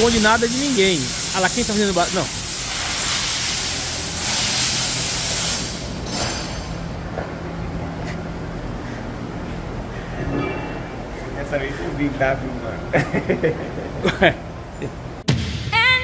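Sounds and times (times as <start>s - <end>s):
pressure washer spray hissing: 0.0s - 6.0s
low machine hum: 5.8s - 16.0s.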